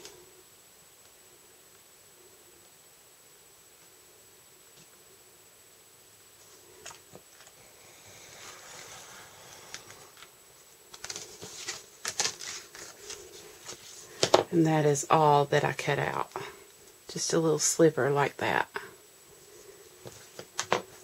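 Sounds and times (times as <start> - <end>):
knife scratching cardstock: 7.8 - 10.1
clicks and rustles of card: 10.9 - 14.5.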